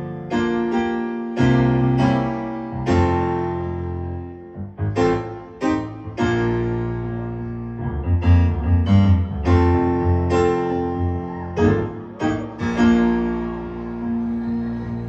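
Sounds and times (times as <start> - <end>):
grand piano chords: 0.0 - 15.0.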